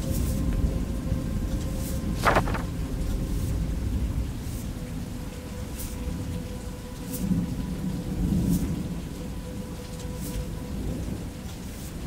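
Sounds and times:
steady rain: 0:00.0 - 0:12.0.

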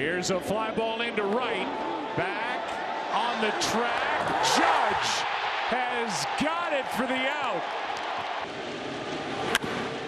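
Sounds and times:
ballpark crowd noise: 0:00.0 - 0:10.0.

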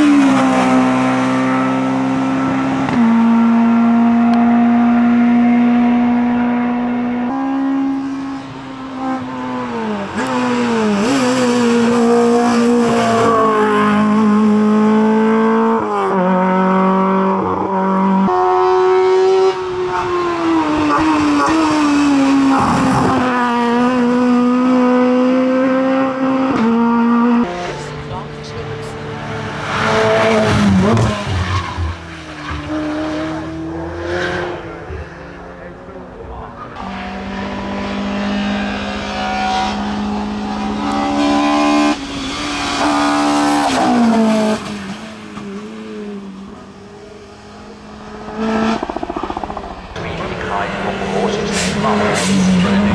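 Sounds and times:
race cars accelerating: 0:00.0 - 0:52.9.

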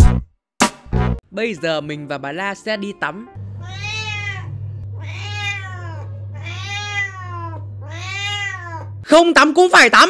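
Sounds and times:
steady low hum: 0:03.4 - 0:09.2
cat meowing: 0:03.6 - 0:09.1.

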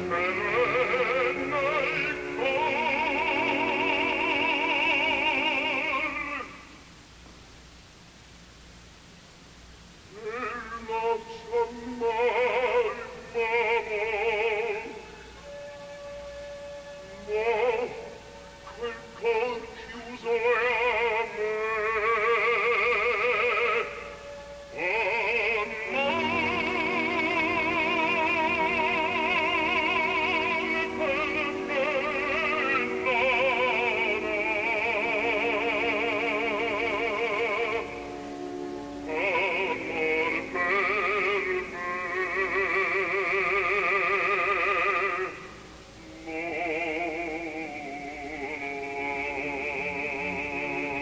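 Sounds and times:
opera singing with vibrato: 0:00.0 - 0:06.8, 0:10.1 - 0:51.0
orchestra playing: 0:15.3 - 0:19.8, 0:23.7 - 0:41.3.

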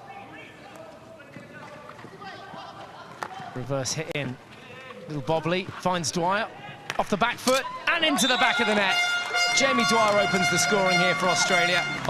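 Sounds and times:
men's voices calling: 0:04.6 - 0:12.0.

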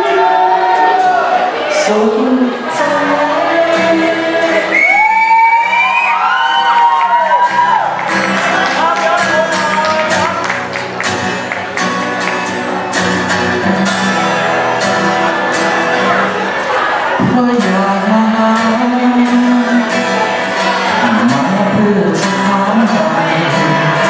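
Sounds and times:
acoustic guitars strumming: 0:00.0 - 0:06.0, 0:06.6 - 0:24.0.

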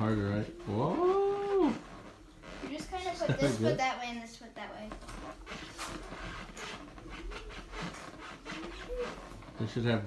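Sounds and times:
wheels scrubbing carpet: 0:05.4 - 0:10.0.

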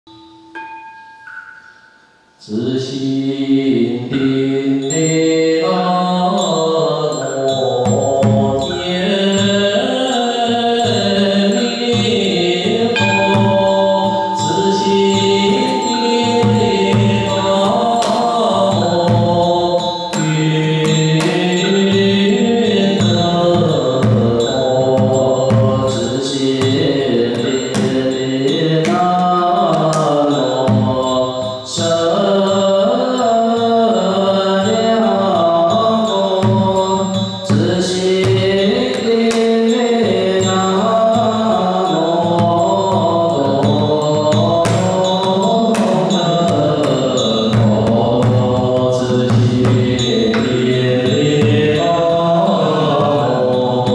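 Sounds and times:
small percussion: 0:00.1 - 0:53.9
group chanting in unison: 0:05.9 - 0:53.9
temple drum beaten with sticks: 0:07.4 - 0:53.9.

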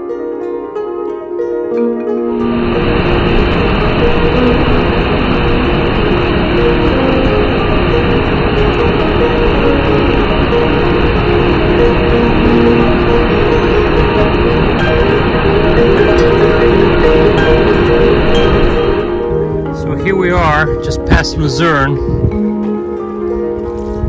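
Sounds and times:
plucked-string background music: 0:00.0 - 0:24.0
water rushing over rock: 0:02.4 - 0:21.7.

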